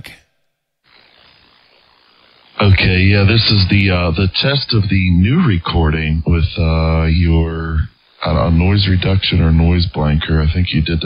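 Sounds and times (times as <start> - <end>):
radio static hiss: 0.9 - 11.0.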